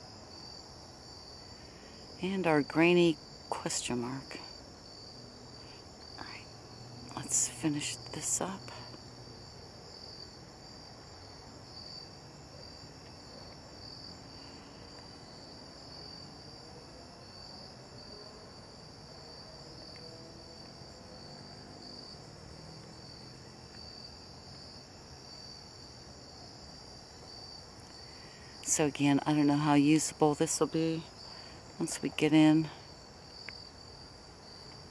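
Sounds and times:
crickets trilling: 0:00.0 - 0:34.9
faint low background noise: 0:00.0 - 0:34.9.

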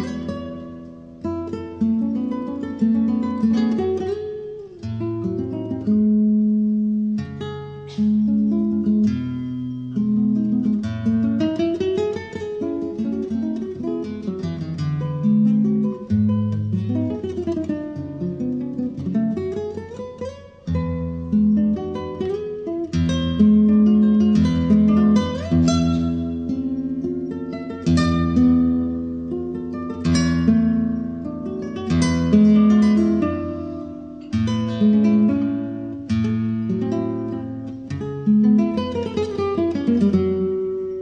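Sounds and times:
fingerstyle acoustic guitar: 0:00.0 - 0:41.0.

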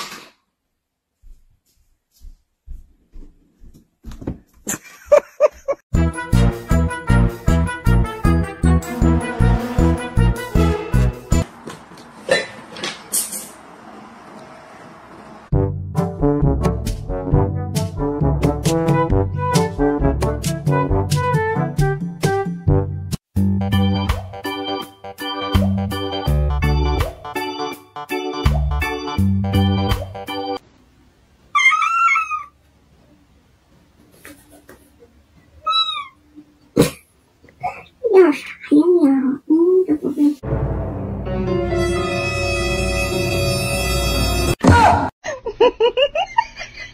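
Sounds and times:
brass music: 0:05.9 - 0:11.4, 0:15.5 - 0:30.6, 0:40.4 - 0:44.6
cat meowing: 0:31.6 - 0:32.6, 0:35.6 - 0:36.2.

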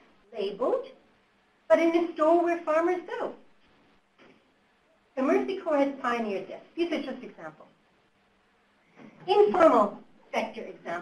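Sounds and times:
woman speaking: 0:00.3 - 0:01.0, 0:01.7 - 0:03.5, 0:05.2 - 0:07.8, 0:09.2 - 0:11.0.

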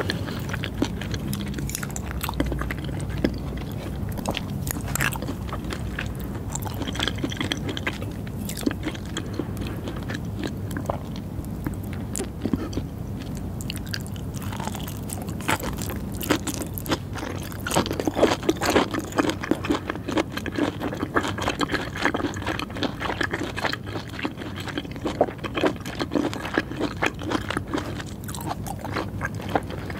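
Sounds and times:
close-miked wet chewing: 0:00.0 - 0:29.9.

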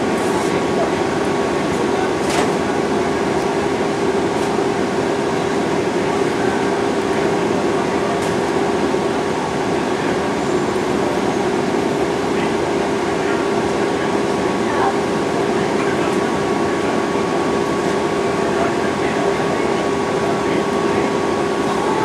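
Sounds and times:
constant low hum: 0:00.0 - 0:22.0
vehicle cabin drone: 0:00.0 - 0:22.0.

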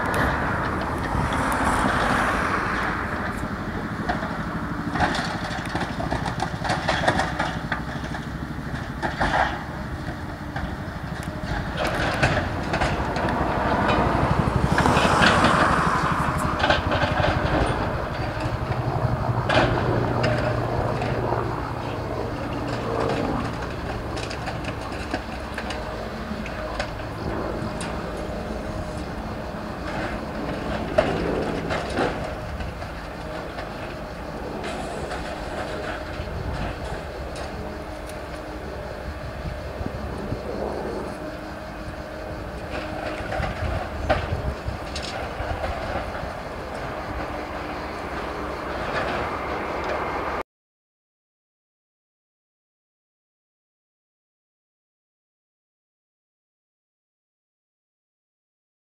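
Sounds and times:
diesel engines running: 0:00.0 - 0:50.4.

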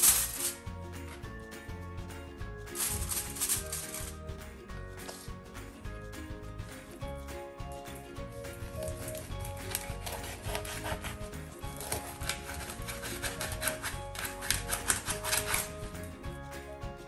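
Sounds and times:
knife scraping fish scales: 0:00.0 - 0:00.6, 0:02.8 - 0:04.2, 0:08.4 - 0:16.1.

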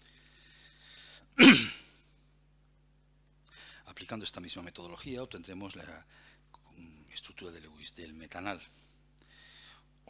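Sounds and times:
man sneezing: 0:01.4 - 0:02.0.

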